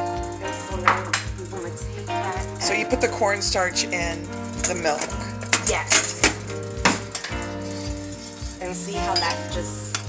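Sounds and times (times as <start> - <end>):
spoon scraping metal pan: 4.6 - 10.0
spoon clinking on pan: 9.1 - 10.0.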